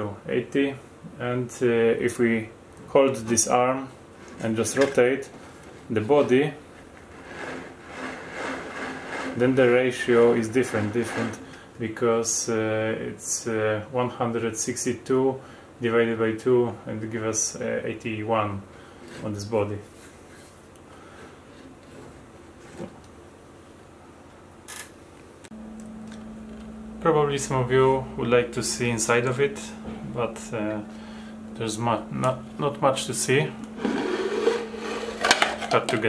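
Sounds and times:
low electrical hum: 0:00.0 - 0:36.0
plastic gear rubbing: 0:07.0 - 0:09.5
short scrape: 0:07.1 - 0:11.4, 0:33.7 - 0:35.7.

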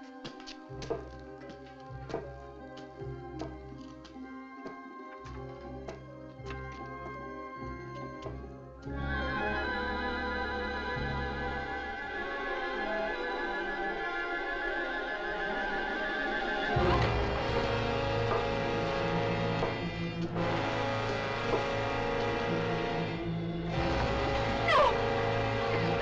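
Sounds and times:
suspenseful film score music: 0:00.0 - 0:26.0
heavy low musical part: 0:16.7 - 0:26.0.

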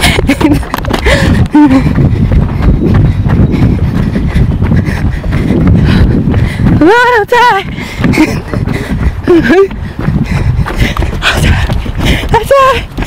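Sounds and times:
running footsteps thudding: 0:00.0 - 0:13.0.

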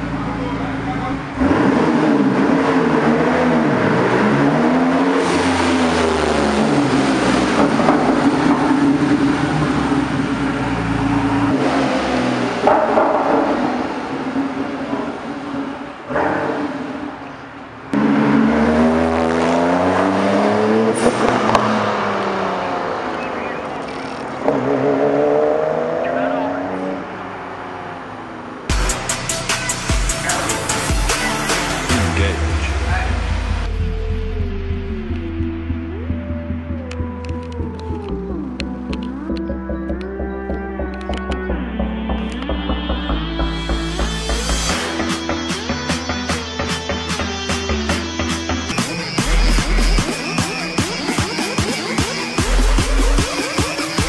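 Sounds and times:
car engine revving: 0:00.0 - 0:54.0.

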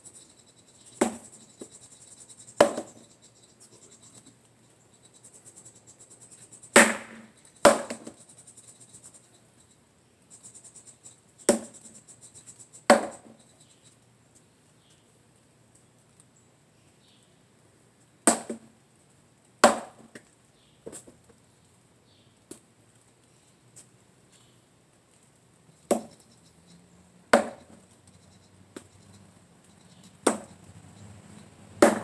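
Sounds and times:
wooden sword knocking wood: 0:02.6 - 0:02.9, 0:06.8 - 0:08.1, 0:11.5 - 0:11.7, 0:12.9 - 0:13.2, 0:19.6 - 0:20.0, 0:25.9 - 0:26.1, 0:27.4 - 0:27.7, 0:30.3 - 0:30.5.

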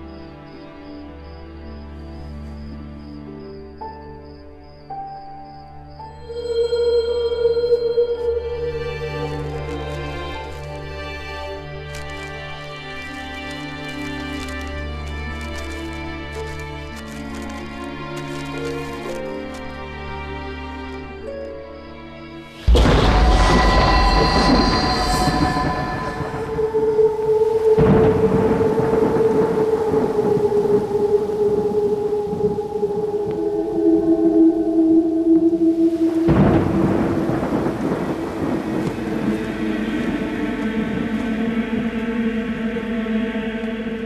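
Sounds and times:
background music held notes: 0:00.0 - 0:44.0
thunder clap and rumbles: 0:22.6 - 0:34.4, 0:35.2 - 0:42.0.

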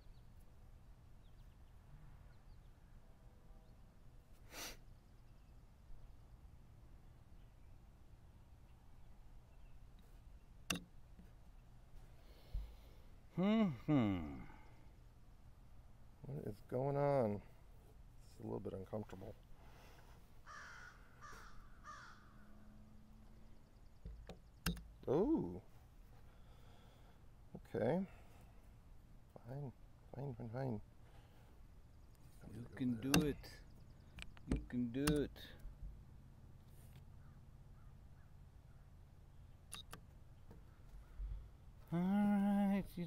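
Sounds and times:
faint outdoor background: 0:00.0 - 0:43.0
crow cawing: 0:20.4 - 0:22.7.

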